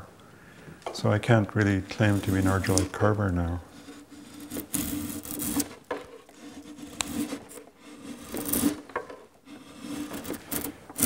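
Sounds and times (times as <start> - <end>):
carving tool shaving wood: 1.6 - 11.0.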